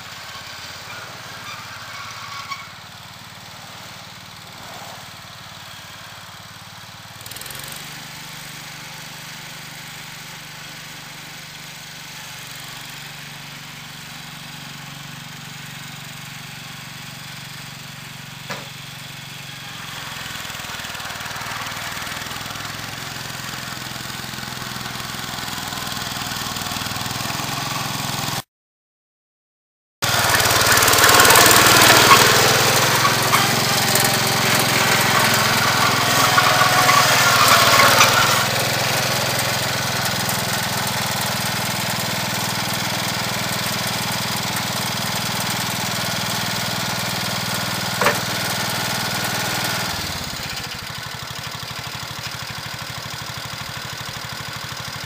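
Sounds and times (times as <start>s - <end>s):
garden tractor engine running: 0.0s - 28.4s, 30.0s - 55.0s
plow blade scraping pavement: 0.0s - 28.4s, 30.0s - 55.0s.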